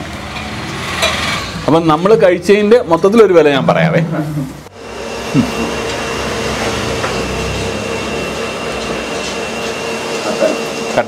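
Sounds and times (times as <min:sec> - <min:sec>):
machine humming with high whine: 0:00.0 - 0:11.0.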